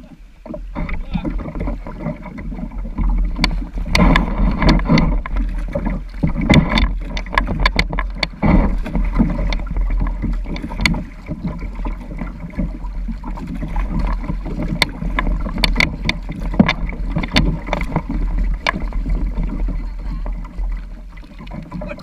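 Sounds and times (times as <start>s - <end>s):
river water splashing against kayak: 0.0s - 22.0s
sharp clicks and knocks: 0.4s - 20.8s.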